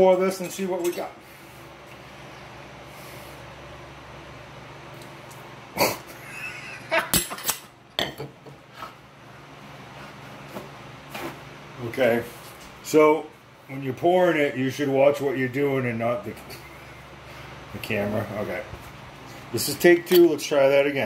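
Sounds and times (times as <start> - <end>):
glassware clinking: 20.1 - 20.4.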